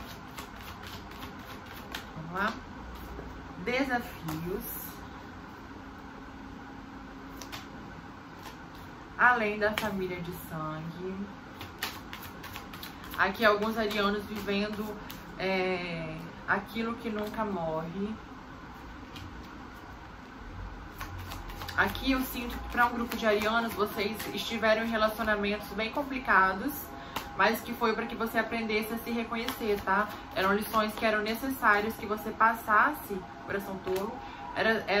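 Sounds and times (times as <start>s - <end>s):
cards being shuffled: 0.0s - 3.2s, 4.0s - 4.5s, 7.3s - 7.7s, 8.4s - 8.9s, 11.5s - 15.2s, 20.9s - 25.4s, 29.0s - 32.2s
low room hum: 0.0s - 35.0s.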